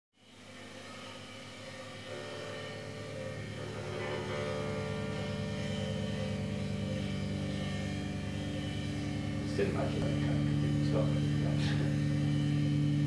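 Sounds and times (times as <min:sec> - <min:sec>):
bass guitar drone: 0:00.2 - 0:13.0
electric guitar drone: 0:00.2 - 0:13.0.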